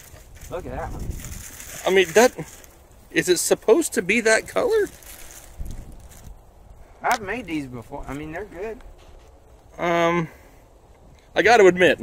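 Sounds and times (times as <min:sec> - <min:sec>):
wind rumbling on microphone: 0:00.0 - 0:03.2, 0:04.3 - 0:09.4
faint outdoor background noise: 0:00.0 - 0:12.0.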